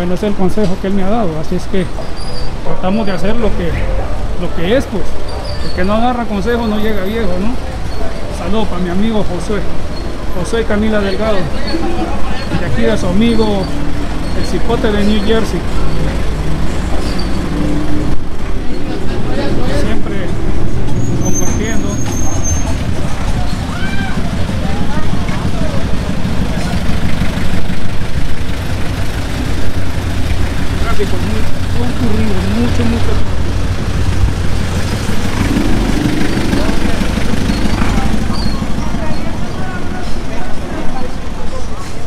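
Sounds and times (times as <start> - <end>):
street traffic: 0.0 - 42.0
truck engine rumbling: 0.0 - 42.0
people's voices: 2.6 - 42.0.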